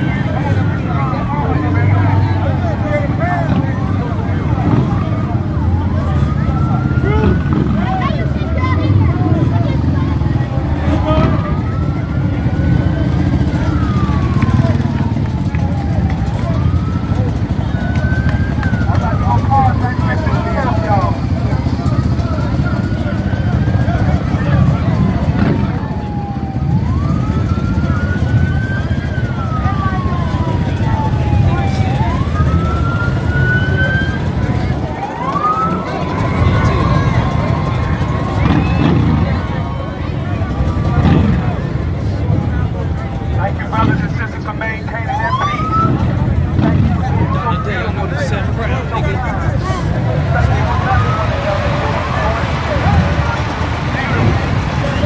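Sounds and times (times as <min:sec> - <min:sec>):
crowd voices: 0:00.0 - 0:55.0
low rumble of vehicles: 0:00.0 - 0:55.0
siren wailing: 0:00.0 - 0:55.0.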